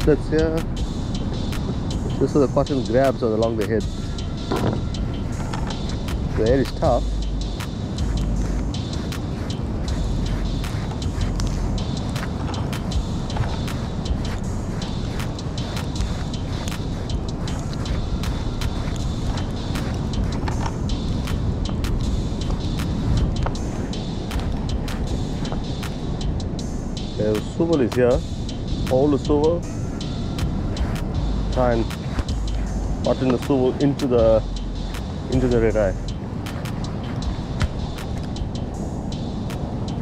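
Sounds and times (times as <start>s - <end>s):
wind rumble on microphone: 0.0s - 40.0s.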